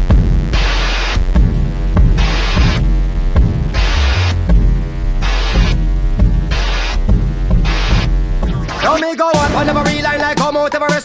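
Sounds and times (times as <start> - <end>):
dancehall music with deep bass: 0.0 - 11.0.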